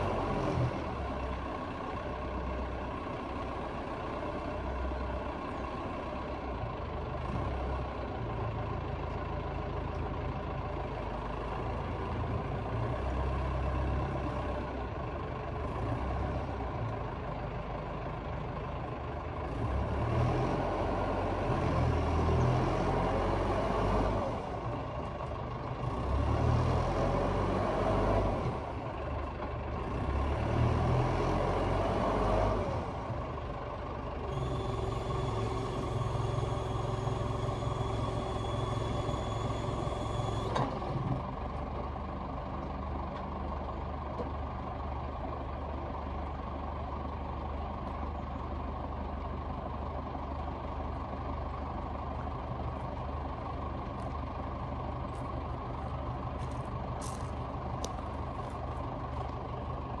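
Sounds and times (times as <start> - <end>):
diesel engine running: 0.0 - 60.0.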